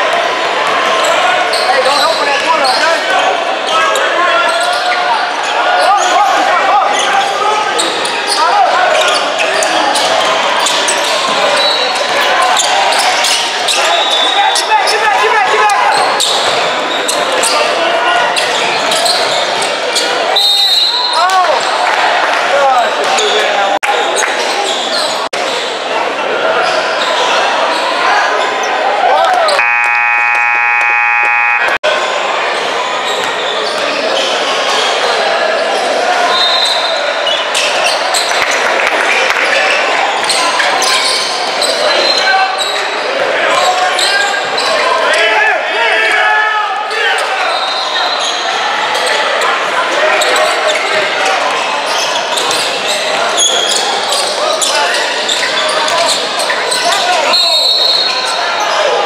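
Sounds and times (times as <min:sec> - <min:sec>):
voices echoing in gym: 0:00.0 - 0:59.0
sneakers squeaking on hardwood: 0:18.4 - 0:20.1
referee whistle blasts: 0:20.4 - 0:21.2, 0:29.5 - 0:31.8, 0:57.3 - 0:58.2
scoreboard buzzer: 0:29.6 - 0:31.8.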